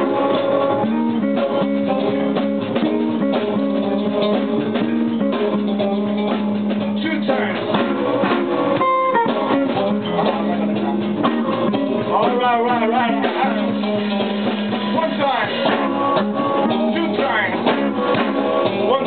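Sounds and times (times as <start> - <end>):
drum kit: 0.0 - 19.0
electric blues band: 0.0 - 19.0
electric guitar single-note line: 8.8 - 12.1.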